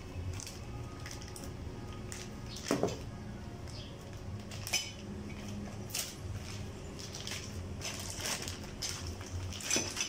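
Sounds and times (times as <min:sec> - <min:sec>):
plastic wrapping rustling: 0:00.2 - 0:03.1, 0:04.0 - 0:10.0.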